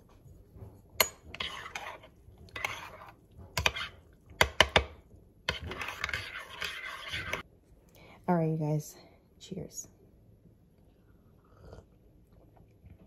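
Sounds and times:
spoon stirring in a mug: 0.2s - 7.5s.

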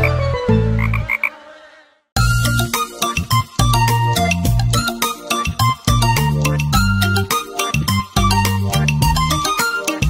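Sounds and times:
children's song: 0.8s - 3.2s.

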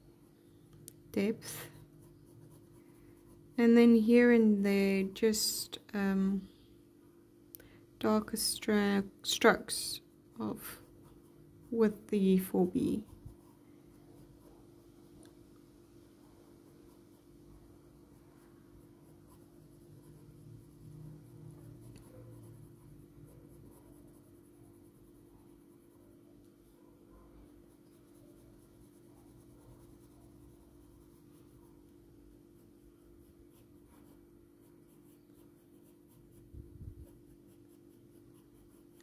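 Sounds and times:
steady low hum: 0.0s - 39.0s
pencil scratching on paper: 1.2s - 4.3s, 9.2s - 15.3s, 16.1s - 17.4s, 18.0s - 39.0s.

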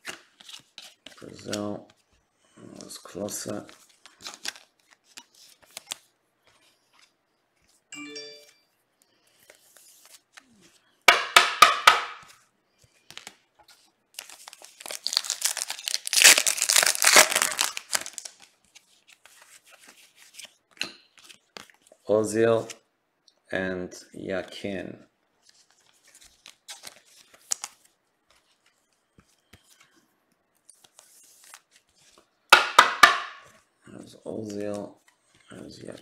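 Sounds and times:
soft chime: 7.9s - 8.8s
plastic crackles: 14.1s - 18.7s
foil wrapper crinkling and tearing: 14.2s - 18.6s.

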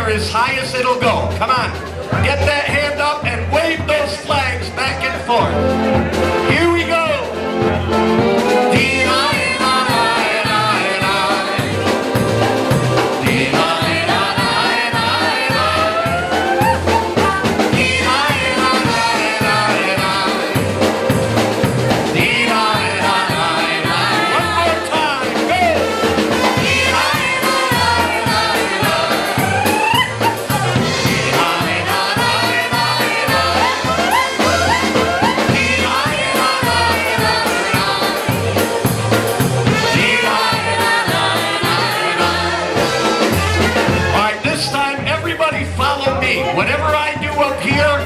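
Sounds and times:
polka band playing: 0.0s - 48.0s
voices singing together: 8.3s - 44.6s.

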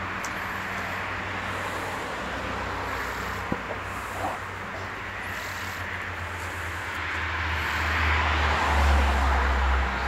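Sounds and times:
road vehicle passing by: 0.0s - 10.0s.

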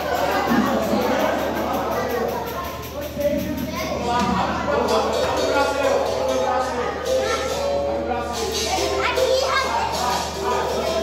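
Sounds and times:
voices chattering and calling out: 0.0s - 11.0s.

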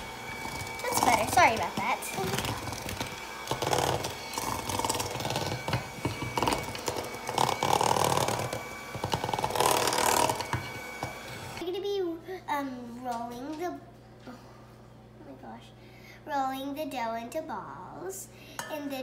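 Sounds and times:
electric hand mixer running: 0.0s - 11.6s
girl speaking: 0.8s - 2.8s, 11.6s - 14.4s, 15.2s - 19.0s.

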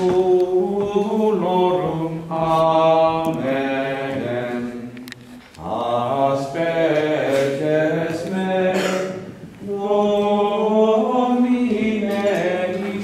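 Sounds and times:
voices singing chant: 0.0s - 13.0s.

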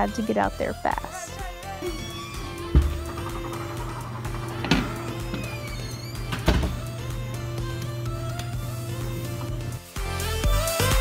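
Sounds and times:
background music with low drone: 0.0s - 11.0s.

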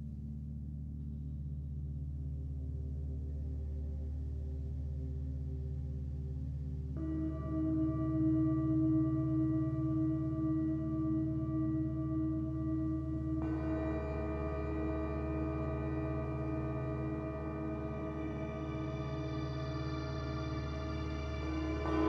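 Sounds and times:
synthesizer drone: 11.3s - 22.0s.

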